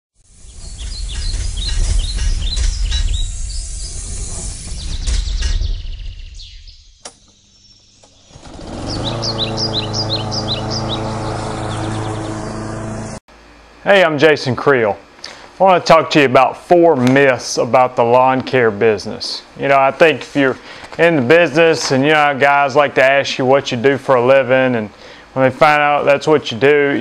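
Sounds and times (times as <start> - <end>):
birds chirping: 0.2 - 13.2
click: 7.0 - 7.4
steady low drone: 8.5 - 13.2
loud low rumble: 9.0 - 13.2.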